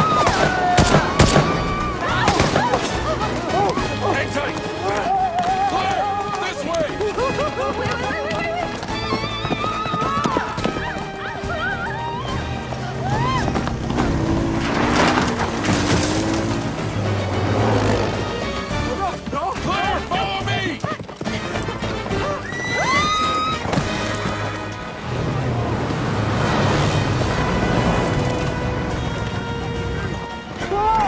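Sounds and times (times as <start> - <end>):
film score music: 0.0 - 31.0
horses galloping hoofbeats: 0.0 - 31.0
horse whinnying: 7.4 - 14.3, 20.8 - 24.5.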